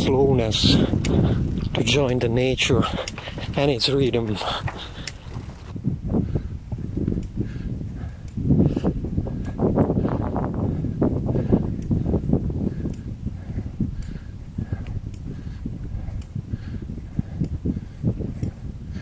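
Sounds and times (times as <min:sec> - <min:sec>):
bicycle rolling over rough trail: 0:00.1 - 0:14.4.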